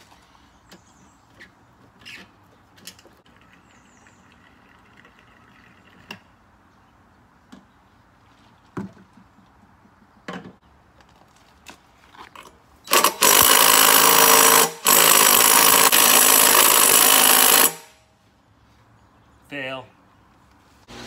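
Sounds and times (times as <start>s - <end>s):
cordless drill spinning engine: 12.9s - 17.9s.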